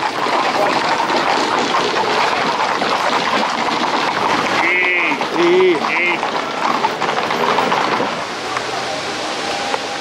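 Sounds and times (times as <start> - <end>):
hooves clattering on asphalt: 0.0 - 8.9.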